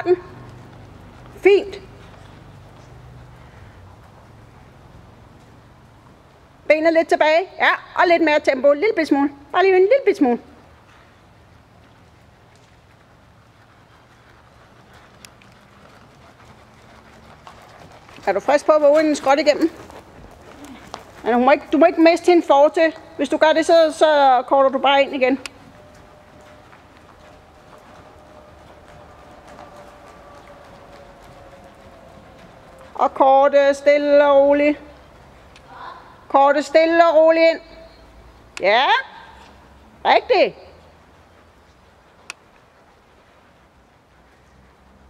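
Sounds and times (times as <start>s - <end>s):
hoofbeats trotting on sand: 0.0s - 6.5s, 10.2s - 38.6s, 39.2s - 45.0s.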